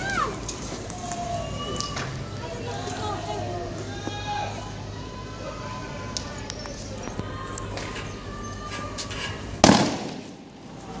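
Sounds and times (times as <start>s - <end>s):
loud bang with ringing tail: 9.6s - 10.4s.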